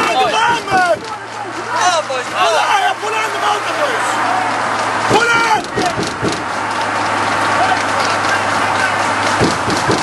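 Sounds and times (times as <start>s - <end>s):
car engine hum: 0.0s - 10.0s
road and wind noise: 0.0s - 10.0s.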